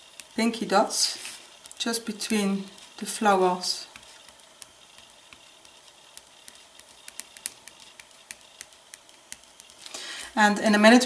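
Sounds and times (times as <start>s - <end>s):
marker tip tapping on paper: 3.9s - 9.8s.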